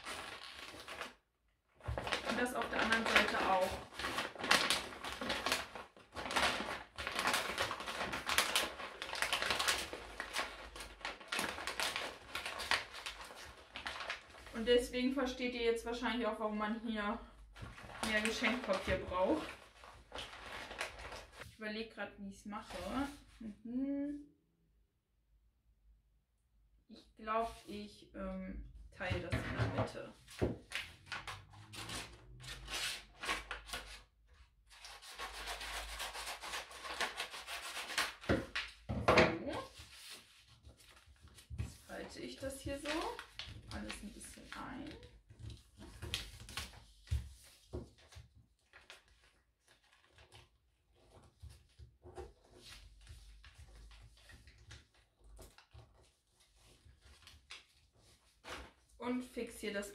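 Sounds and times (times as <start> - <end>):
paper rustling and creasing: 0.0 - 1.2, 1.8 - 14.6, 17.5 - 21.6, 29.2 - 38.9, 39.6 - 59.0.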